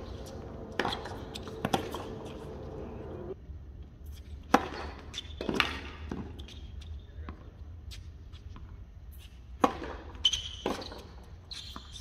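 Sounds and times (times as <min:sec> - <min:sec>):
tennis ball bouncing: 0:00.0 - 0:03.4, 0:04.5 - 0:06.5, 0:09.6 - 0:11.1
tennis ball hit by racket: 0:00.5 - 0:02.6, 0:04.5 - 0:06.3, 0:09.6 - 0:10.9.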